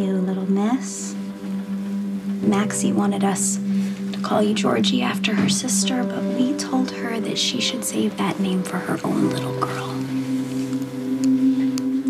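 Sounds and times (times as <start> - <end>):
soft sustained music chord: 0.0 - 12.0.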